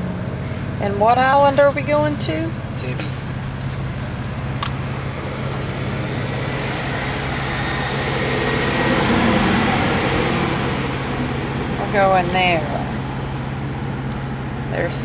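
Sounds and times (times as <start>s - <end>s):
car engine hum: 0.0s - 15.0s
road and air noise: 0.0s - 15.0s.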